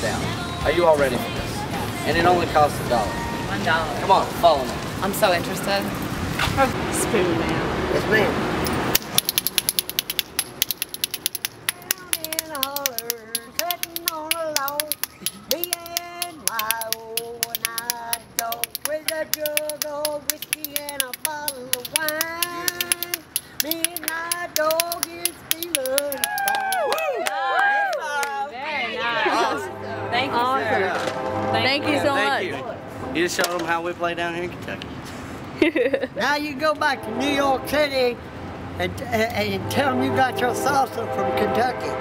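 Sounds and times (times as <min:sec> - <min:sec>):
spoons rattling as percussion: 0:08.9 - 0:26.9
high voice singing: 0:10.9 - 0:26.9
voices: 0:35.7 - 0:42.0.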